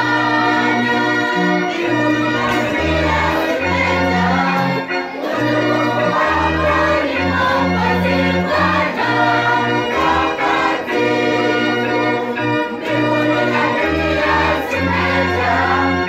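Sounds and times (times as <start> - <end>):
children's choir singing a hymn: 0.0 - 16.0.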